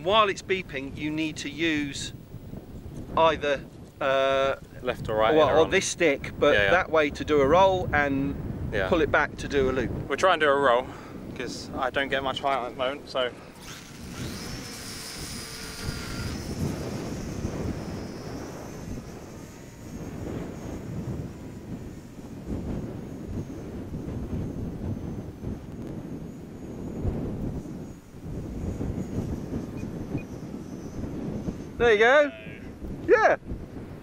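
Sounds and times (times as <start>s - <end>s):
high-pitched model plane motor whine: 0.0s - 33.0s
wind buffeting microphone: 0.0s - 34.0s.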